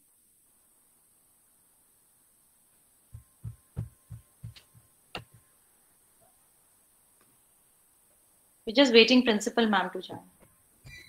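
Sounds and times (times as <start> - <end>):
faint hum: 0.0 - 11.0
low dull thumps: 3.1 - 5.4.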